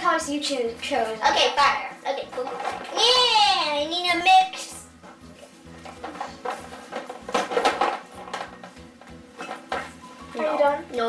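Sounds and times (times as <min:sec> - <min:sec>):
plastic bottles clinking against glass: 0:05.8 - 0:08.7.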